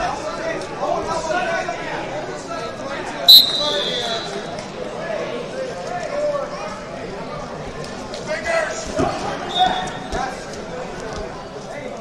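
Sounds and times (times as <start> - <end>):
crowd voices in a large hall: 0.0 - 12.0.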